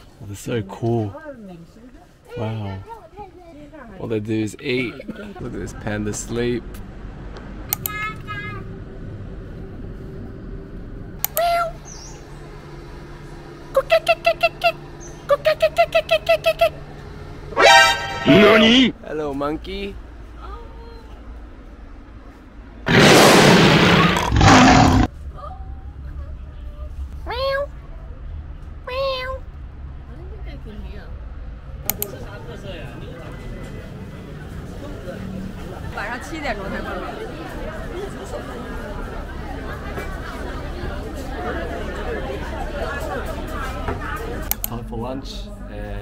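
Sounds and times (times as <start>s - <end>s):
low hum: 6.5s - 13.9s.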